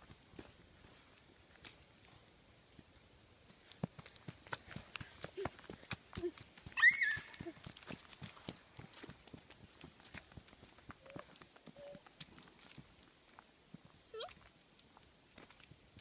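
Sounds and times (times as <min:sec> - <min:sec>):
child squealing: 0:06.8 - 0:07.5.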